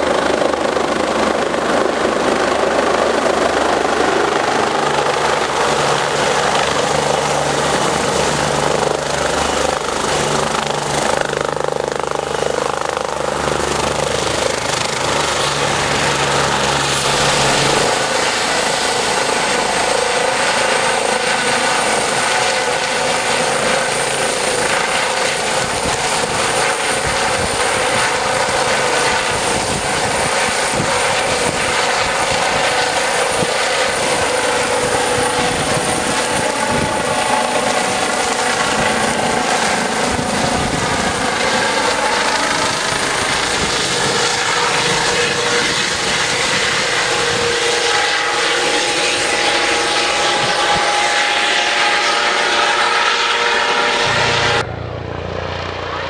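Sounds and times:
helicopter rotor noise: 0.0s - 56.0s
helicopter turbine whine: 0.0s - 56.0s.

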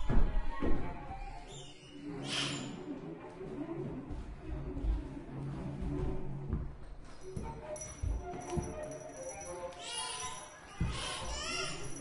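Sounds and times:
feet thudding on wooden floor: 5.8s - 9.0s.

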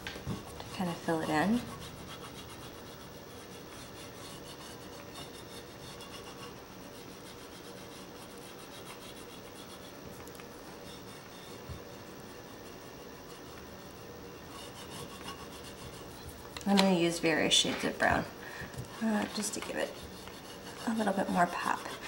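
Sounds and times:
oil pastel rubbing on paper: 0.3s - 18.3s, 18.9s - 22.0s.

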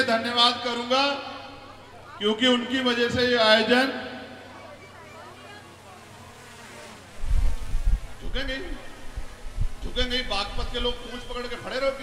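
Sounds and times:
faint buzzing noise: 4.5s - 12.0s
deep rumble on microphone: 7.2s - 10.0s.

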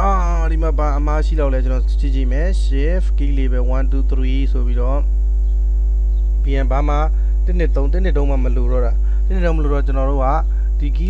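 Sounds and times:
man speaking: 0.0s - 5.1s, 6.5s - 11.0s
electrical mains hum: 0.0s - 11.0s.

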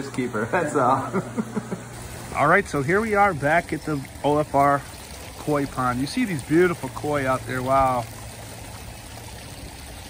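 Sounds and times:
low steady hum: 0.0s - 10.0s
water running into a pond: 0.0s - 10.0s.

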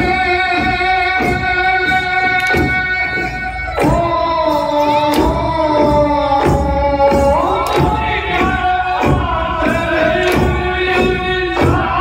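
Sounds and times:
folk singing: 0.0s - 12.0s
regular drum beats: 0.0s - 12.0s.

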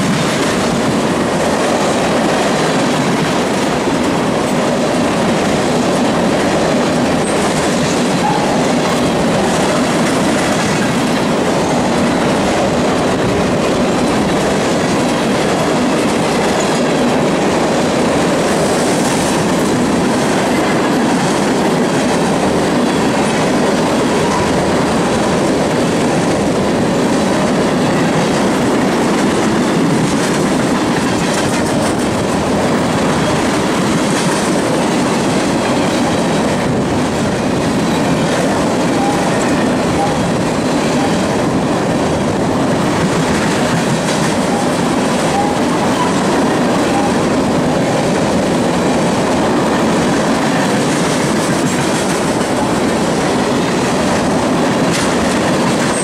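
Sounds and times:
train wheels rolling on rail: 0.0s - 56.0s
wheels clicking over rail joints: 0.0s - 56.0s.

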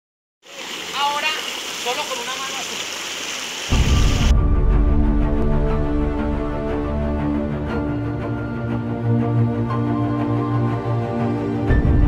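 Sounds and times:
stream rushing over stones: 0.4s - 4.3s
person speaking: 0.6s - 2.9s.

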